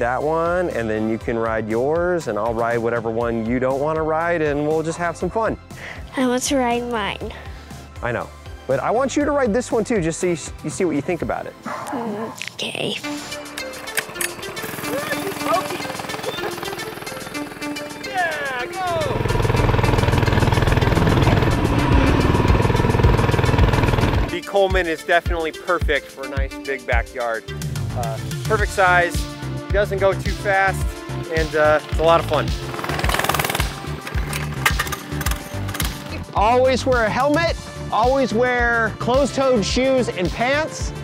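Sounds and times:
background music: 0.0 - 41.0
small engine running: 13.3 - 24.4, 31.3 - 36.3
recoil starter cord pull: 13.5 - 17.4, 19.0 - 24.4, 31.9 - 36.2.

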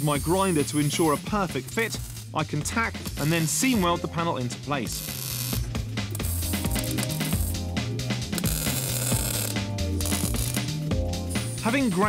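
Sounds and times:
welder crackling: 0.0 - 4.0, 4.8 - 12.0
background music with bass line: 0.0 - 12.0.

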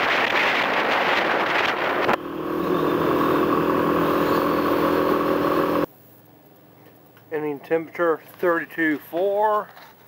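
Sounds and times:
wind on microphone: 0.0 - 5.9
motorcycle engine running: 2.0 - 5.9.

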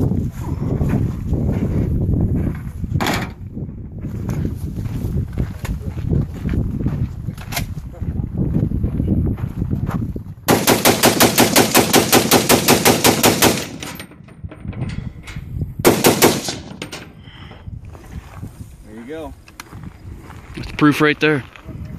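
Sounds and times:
rifle rapid gunfire: 10.5 - 13.9, 15.8 - 16.8.

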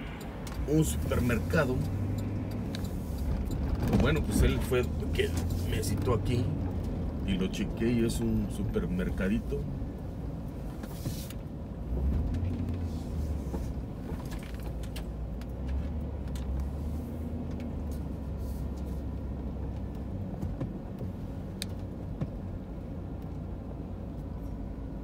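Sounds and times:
car engine and road rumble: 0.0 - 25.0.

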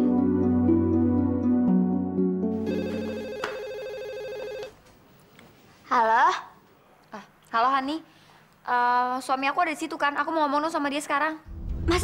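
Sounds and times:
soft background music: 0.0 - 4.6
telephone ringing electronic trill: 2.6 - 4.7.

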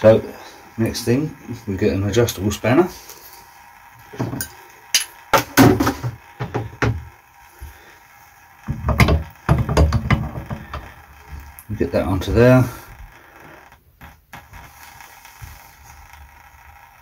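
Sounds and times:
hand tools clicking and knocking: 8.7 - 10.9
spanner thudding and rubbing on tap: 8.7 - 10.9.

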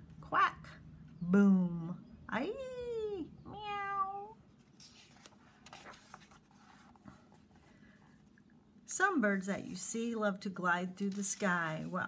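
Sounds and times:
cat meow: 3.5 - 4.4
paper rustling: 4.6 - 8.0, 11.0 - 12.0.

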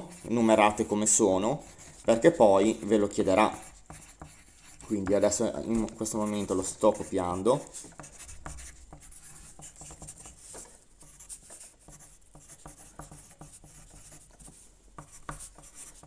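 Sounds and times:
pen scratching on paper: 0.0 - 16.0.

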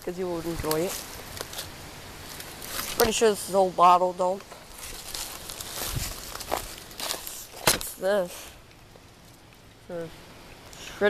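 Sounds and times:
footsteps in dry leaves and twigs: 0.6 - 3.4, 4.4 - 8.0.

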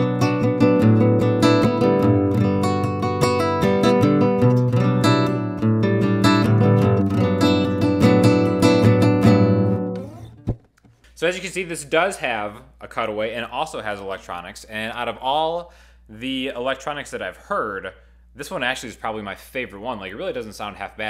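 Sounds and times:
nylon-string guitar playing: 0.0 - 10.7.

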